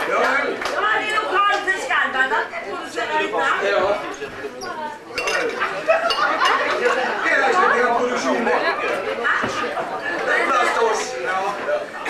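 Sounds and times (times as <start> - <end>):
several voices talking: 0.0 - 12.0.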